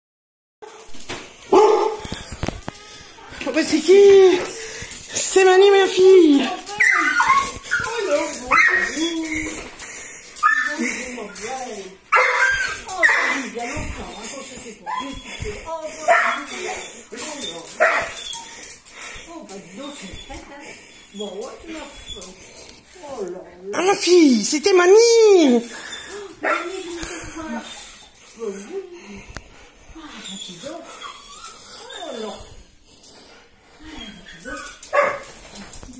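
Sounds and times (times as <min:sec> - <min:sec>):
dog whining: 0:06.3 - 0:09.7, 0:10.4 - 0:13.5, 0:16.1 - 0:18.7, 0:19.9 - 0:22.4, 0:30.0 - 0:32.5, 0:33.8 - 0:35.3
small dog barking and yelping: 0:12.1 - 0:13.4.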